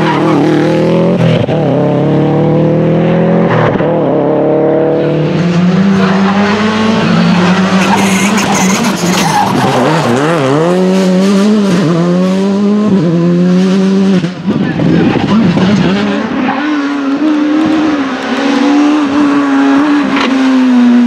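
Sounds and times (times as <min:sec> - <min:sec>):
rally car engine revving: 0:00.0 - 0:21.0
second rally car engine: 0:00.0 - 0:21.0.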